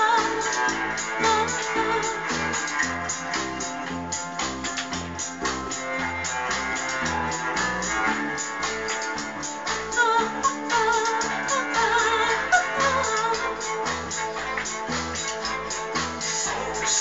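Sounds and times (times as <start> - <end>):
bass guitar: 0.0 - 17.0
drum kit steady beat: 0.0 - 17.0
guitars: 0.0 - 17.0.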